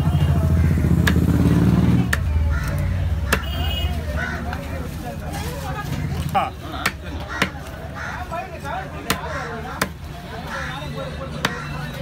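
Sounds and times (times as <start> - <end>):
knife chopping fish on wood: 0.9 - 1.3, 2.0 - 3.5, 6.8 - 7.7, 9.0 - 10.0, 11.4 - 11.7.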